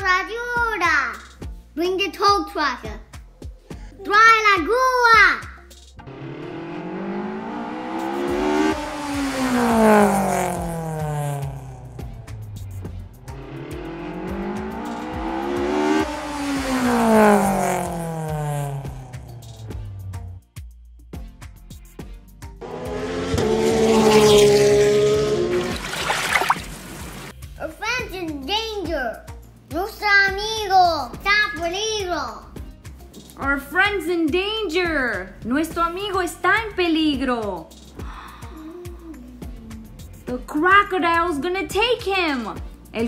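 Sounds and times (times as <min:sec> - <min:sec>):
car engine passing by: 0:06.0 - 0:20.2, 0:22.6 - 0:27.4.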